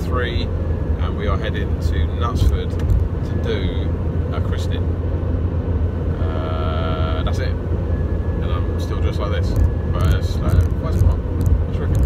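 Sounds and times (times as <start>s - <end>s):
road and engine noise in car: 0.0s - 12.0s.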